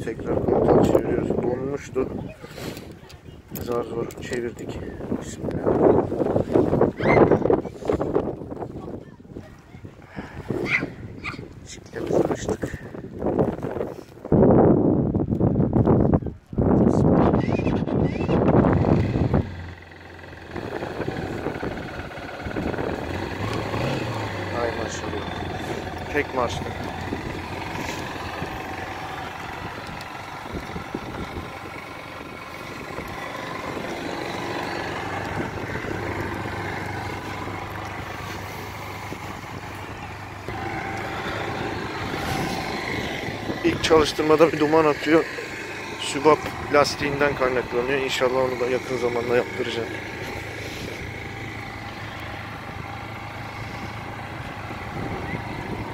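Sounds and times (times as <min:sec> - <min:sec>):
motorcycle engine idling: 0:18.2 - 0:55.9.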